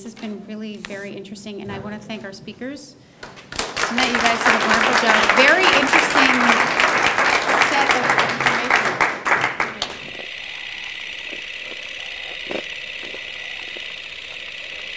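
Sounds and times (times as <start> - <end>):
audience applauding: 3.2 - 10.2
voices: 3.8 - 10.4
high-pitched hum: 3.8 - 14.9.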